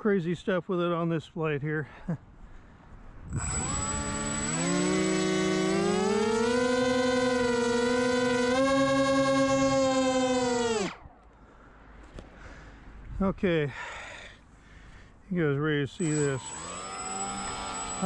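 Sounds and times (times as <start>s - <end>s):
electric motors whining: 3.3s - 11.1s, 16.0s - 18.0s.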